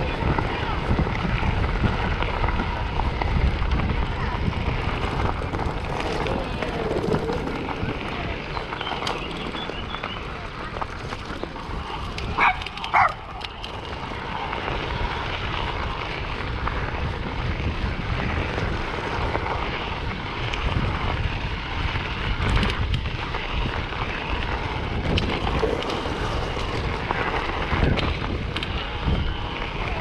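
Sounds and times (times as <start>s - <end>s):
bike tyres crunching on gravel: 0.0s - 30.0s
wind buffeting microphone: 0.0s - 30.0s
dog barking: 12.4s - 13.2s.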